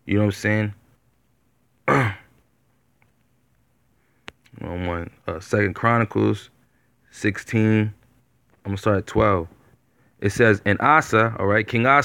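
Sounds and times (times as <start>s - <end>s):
man clearing throat: 1.8s - 2.4s.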